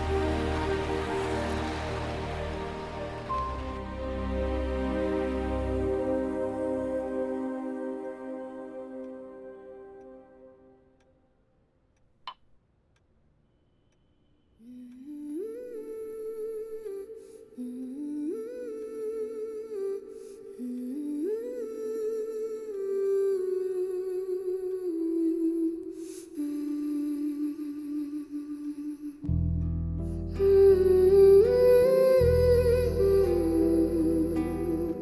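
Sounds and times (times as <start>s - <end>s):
person humming a melody: 30.2s - 35.0s.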